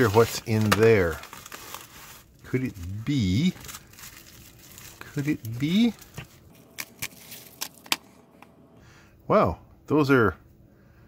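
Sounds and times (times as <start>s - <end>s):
plastic packet crinkling: 0.0s - 8.0s.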